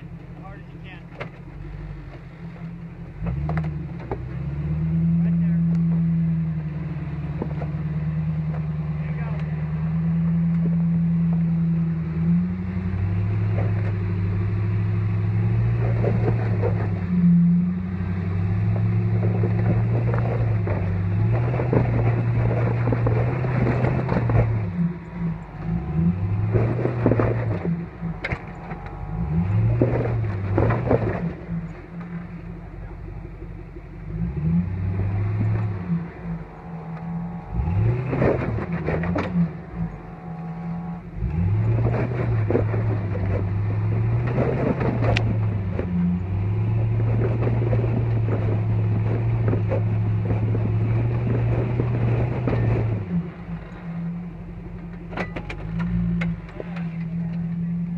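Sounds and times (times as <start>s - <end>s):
off-road engine revving: 0.0s - 57.9s
tires scraping and knocking on rock: 0.0s - 57.9s.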